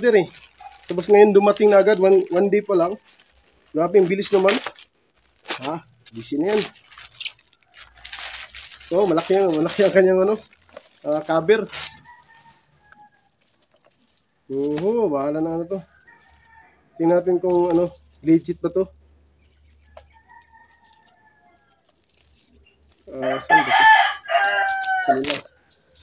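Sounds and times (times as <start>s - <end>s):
plastic package rustling: 0.0s - 18.7s, 19.4s - 26.0s
rooster crowing: 11.8s - 13.3s, 19.9s - 21.8s, 23.1s - 26.0s
chicken calls: 19.5s - 26.0s.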